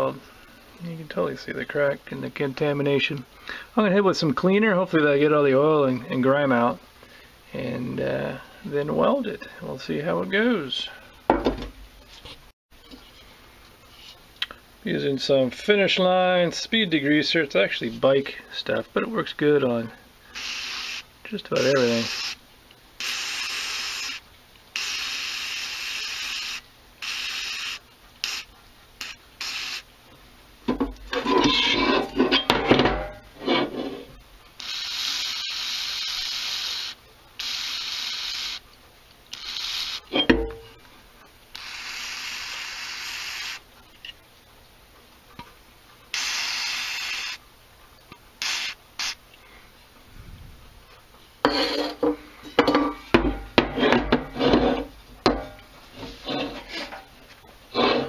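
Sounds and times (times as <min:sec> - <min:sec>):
aerosol spray hissing: 0:20.4 - 0:22.4, 0:23.0 - 0:29.8, 0:34.6 - 0:38.6, 0:46.1 - 0:47.4, 0:48.4 - 0:49.2.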